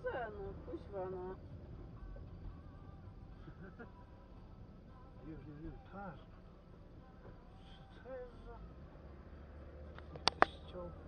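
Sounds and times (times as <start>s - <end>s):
car driving rumble inside cabin: 0.0s - 11.0s.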